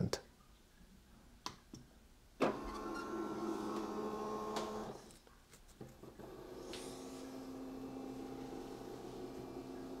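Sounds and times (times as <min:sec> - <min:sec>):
scanner motor whining: 0:06.2 - 0:10.0.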